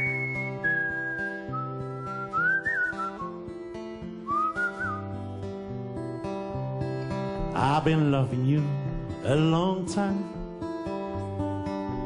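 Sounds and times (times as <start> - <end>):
man whistling a melody: 0.0 - 5.4
fingerpicked acoustic guitar: 0.0 - 12.0.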